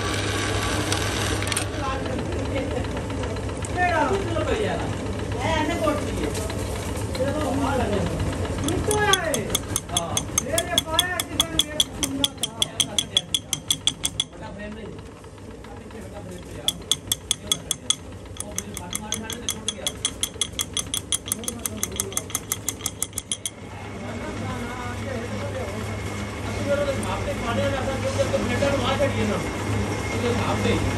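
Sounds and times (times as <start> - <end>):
rapid metallic ticking of file: 8.3 - 23.7.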